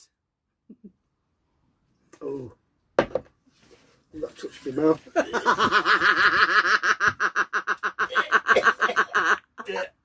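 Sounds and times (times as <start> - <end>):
woman laughing hard: 5.2 - 9.9.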